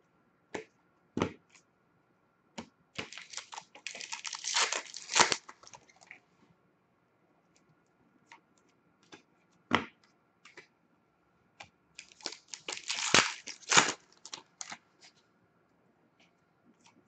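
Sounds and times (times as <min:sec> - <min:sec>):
cards flicking and rustling: 0:03.0 - 0:06.1, 0:12.0 - 0:15.2.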